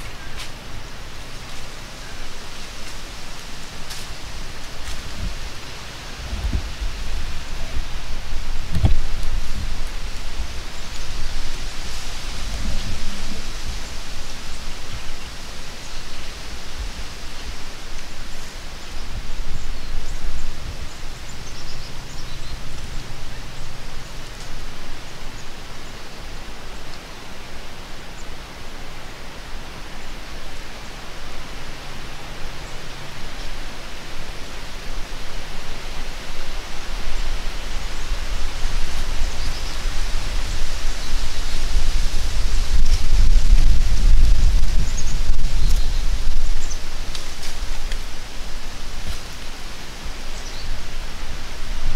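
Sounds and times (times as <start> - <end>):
wind on microphone: 0.0 - 25.0, 34.9 - 51.9
dry leaves rustling: 0.0 - 51.9.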